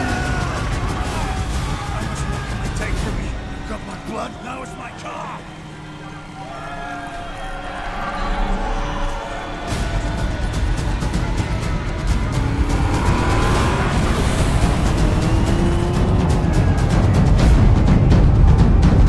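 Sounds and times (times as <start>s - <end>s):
convoy of vehicle engines rumbling: 0.0s - 19.0s
rapid percussive hits: 9.7s - 19.0s.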